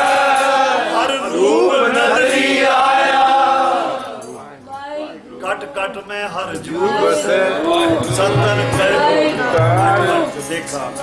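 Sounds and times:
man singing a hymn: 6.4s - 11.0s
harmonium: 6.8s - 11.0s.

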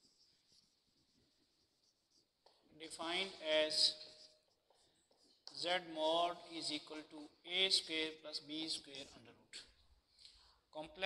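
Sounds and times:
marker scratching on whiteboard: 0.0s - 5.6s
man talking: 2.8s - 4.2s, 5.5s - 9.7s, 10.8s - 11.0s.

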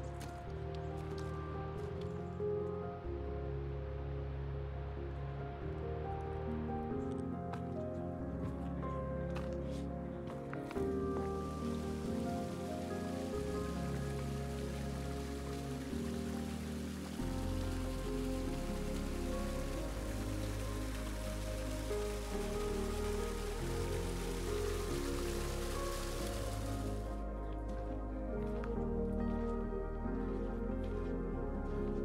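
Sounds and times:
music of sustained low notes: 0.0s - 32.0s
falling water hiss: 11.3s - 27.2s.

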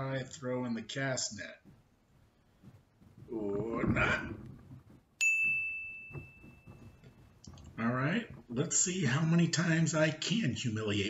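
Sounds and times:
bright bell ding: 5.2s - 7.1s.

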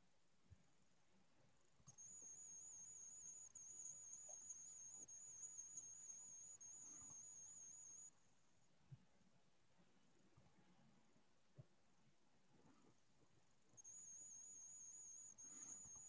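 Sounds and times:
faint high-pitched whine: 0.0s - 16.0s.

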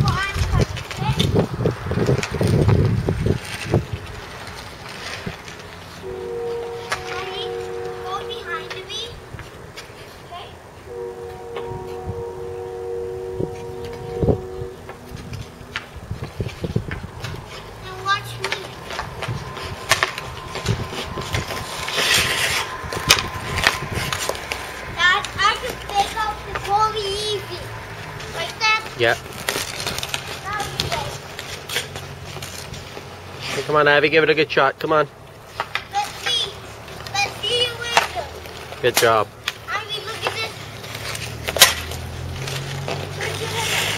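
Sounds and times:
hockey sticks knocking puck: 0.0s - 3.6s, 16.9s - 27.4s, 35.5s - 43.9s
skates scraping ice: 0.0s - 11.0s, 13.5s - 43.9s
two-note hum: 6.0s - 8.8s, 10.9s - 17.8s.

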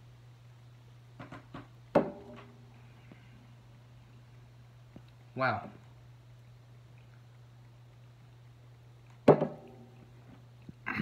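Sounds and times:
steady low hum: 0.0s - 11.0s
soda can clunk on table: 9.3s - 9.7s.

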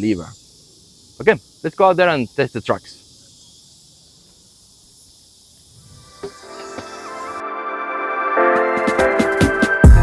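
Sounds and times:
insects hissing: 0.0s - 7.7s
background music: 6.4s - 10.0s.

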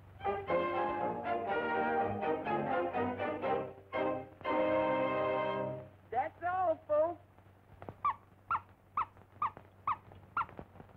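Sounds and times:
cartoon animal-like squeaks: 8.0s - 10.6s.

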